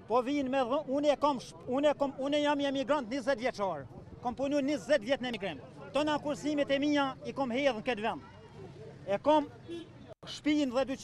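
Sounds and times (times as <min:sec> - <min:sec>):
man talking: 0:00.0 - 0:08.2, 0:10.2 - 0:11.0.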